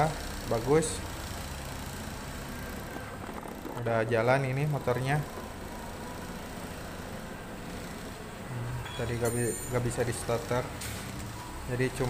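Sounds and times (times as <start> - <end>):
scooter engine idling: 0.0 - 12.0.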